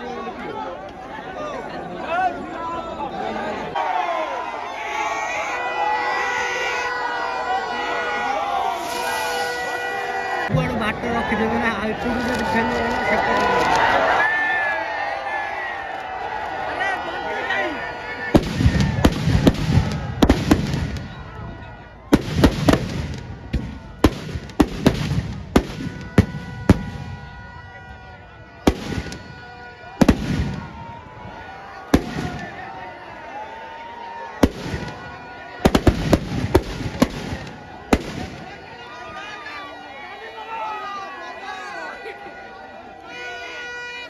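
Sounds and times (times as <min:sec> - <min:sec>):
firecrackers banging: 0:08.4 - 0:14.0, 0:18.3 - 0:27.6, 0:28.6 - 0:31.0, 0:31.9 - 0:32.7, 0:34.4 - 0:38.6.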